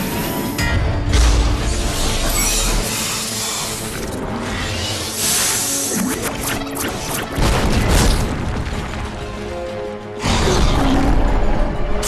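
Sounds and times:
dramatic action music: 0.0 - 12.0.

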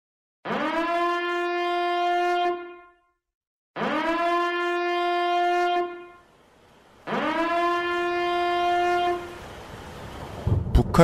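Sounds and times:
horn blasts rising in pitch: 0.4 - 3.1, 3.8 - 6.3, 7.0 - 9.6.

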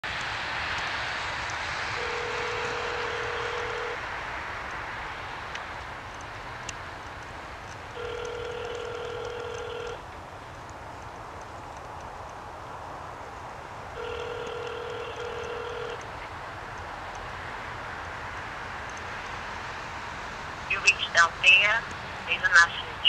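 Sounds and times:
telephone ringback tone: 2.0 - 4.0, 8.0 - 10.0, 14.0 - 16.0.

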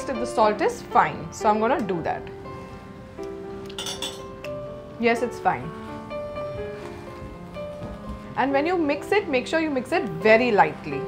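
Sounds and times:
background music with held notes: 0.0 - 11.0
utensil clinking on steel pot: 3.7 - 4.3.

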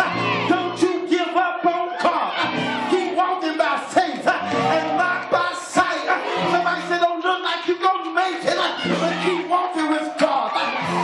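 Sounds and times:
church praise music: 0.0 - 11.0
congregation singing and shouting: 0.0 - 11.0.

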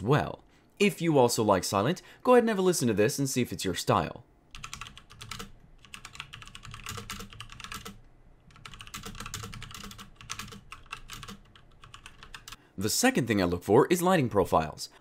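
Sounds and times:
mechanical keyboard typing: 4.5 - 12.6.

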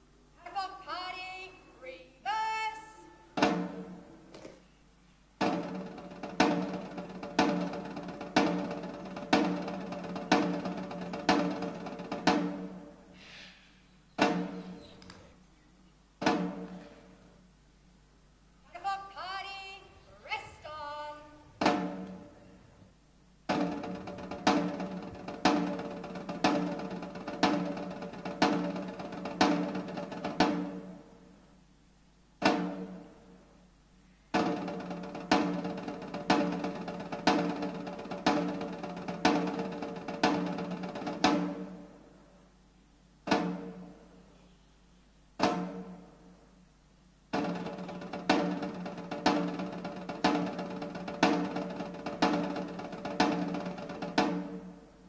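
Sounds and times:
side drum strokes: 3.4 - 4.2, 5.4 - 15.4, 16.2 - 17.5, 21.4 - 22.6, 23.5 - 31.4, 32.4 - 33.4, 34.0 - 42.1, 43.2 - 44.4, 45.4 - 46.4, 47.3 - 55.0.

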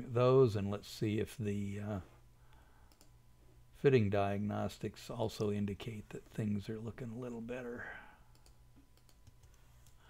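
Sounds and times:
man speaking: 0.0 - 2.2, 3.8 - 8.1
low steady hum: 0.0 - 10.0
computer mouse click: 2.9 - 3.2, 8.3 - 10.0.

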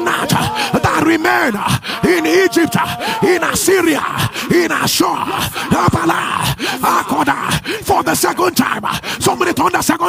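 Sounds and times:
preacher calling out: 0.0 - 10.0.

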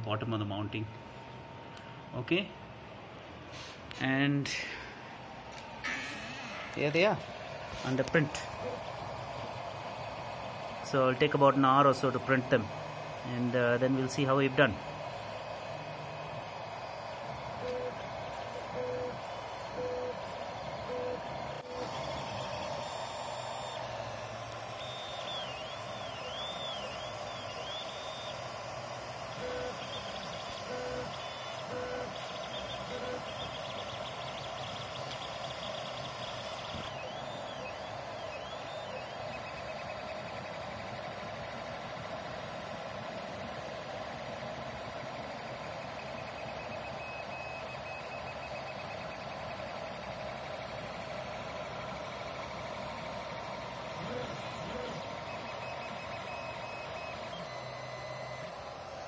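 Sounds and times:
stepper motors whining: 4.1 - 59.0.

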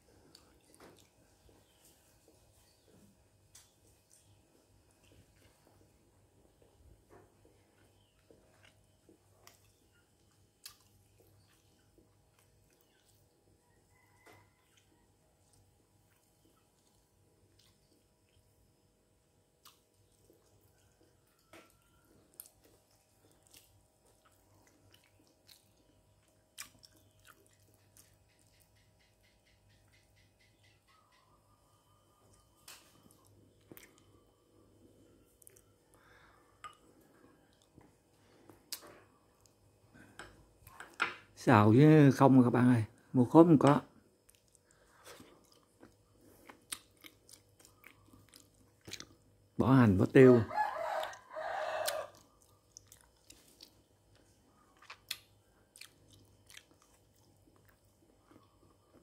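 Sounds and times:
chewing and mouth noises: 0.0 - 2.9, 3.5 - 18.6, 19.6 - 30.0, 32.2 - 40.8, 44.1 - 49.5, 50.9 - 59.0
low steady hum: 0.0 - 51.4, 52.1 - 59.0.

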